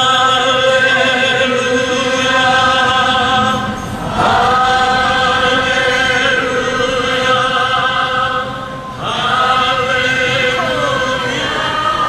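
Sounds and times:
group singing a worship song: 0.0s - 12.0s.

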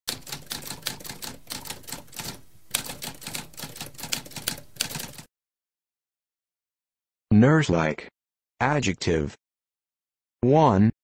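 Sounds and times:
typewriter keys clicking: 0.1s - 5.3s.

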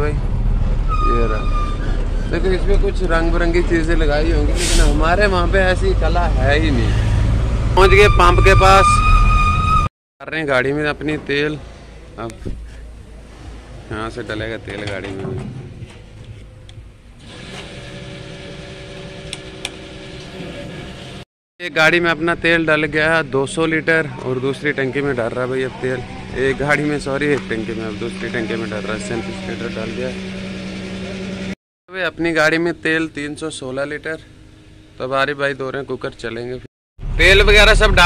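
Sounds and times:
high-pitched tone: 7.8s - 9.9s
fuel pump running: 26.7s - 31.6s.

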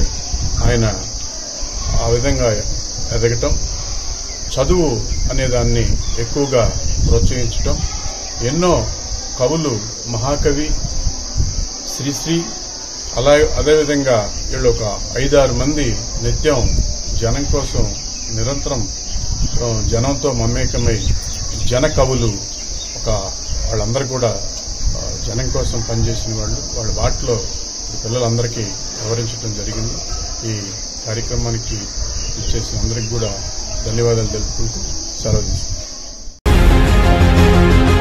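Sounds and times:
man talking: 0.0s - 1.2s, 1.9s - 3.6s, 4.5s - 7.8s, 11.9s - 12.6s, 13.2s - 19.0s, 19.6s - 35.7s
high-pitched insect chorus: 0.0s - 36.4s.

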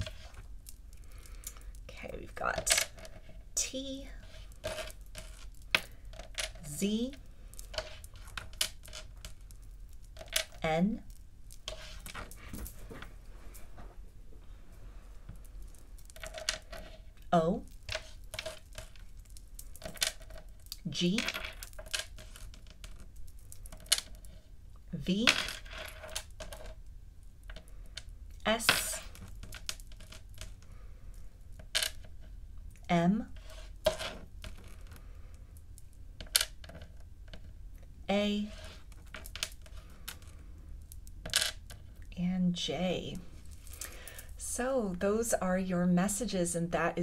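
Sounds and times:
person speaking a letter: 1.9s - 2.9s, 3.6s - 4.2s, 6.6s - 7.2s, 20.9s - 21.4s.

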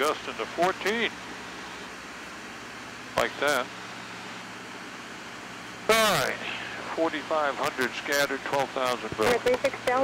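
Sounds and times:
low steady hum: 0.0s - 10.0s
propeller aircraft cabin drone: 0.0s - 10.0s.

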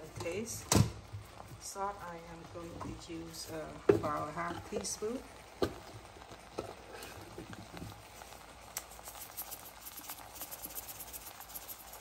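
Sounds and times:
salt sprinkling into a pan: 7.9s - 12.0s.

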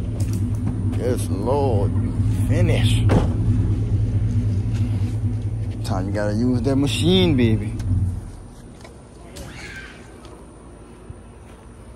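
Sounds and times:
vehicle engine idling: 0.0s - 9.4s.

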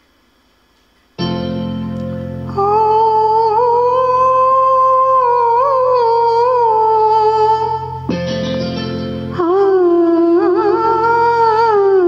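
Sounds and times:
electronic keyboard chords: 1.2s - 4.5s, 5.1s - 12.0s
person humming melody: 2.3s - 12.0s.

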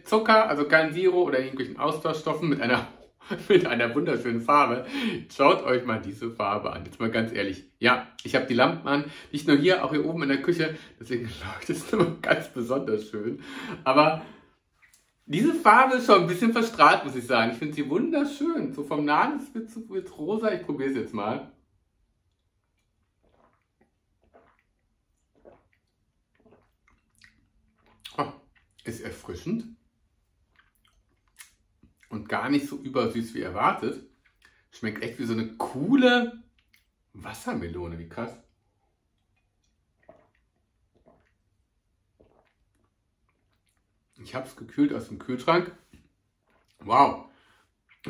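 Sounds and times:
person gulping a drink: 22.0s - 32.8s, 38.4s - 44.7s, 45.7s - 48.0s
faint swallowing: 22.3s - 29.3s, 38.4s - 44.2s.

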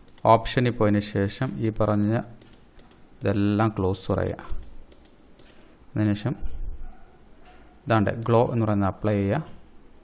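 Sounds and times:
computer clicks: 0.0s - 0.4s, 1.8s - 5.7s, 7.8s - 8.5s
man speaking: 3.2s - 4.6s, 7.9s - 9.5s.

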